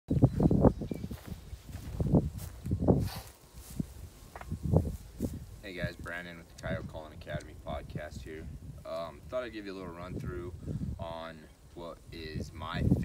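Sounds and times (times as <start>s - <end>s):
footsteps on dry grass: 0.1s - 6.8s.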